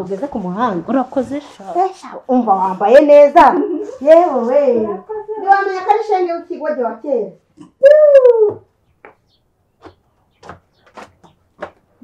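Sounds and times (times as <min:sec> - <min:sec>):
loud high cry: 0:07.8 - 0:08.7.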